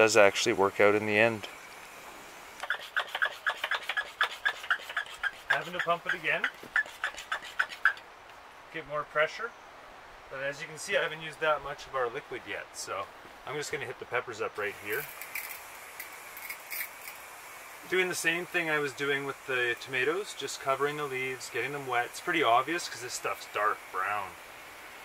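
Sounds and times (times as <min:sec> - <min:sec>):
garden sprayer hissing: 0:00.0 - 0:08.0, 0:14.5 - 0:25.0
hand pump squeaking: 0:02.6 - 0:08.0.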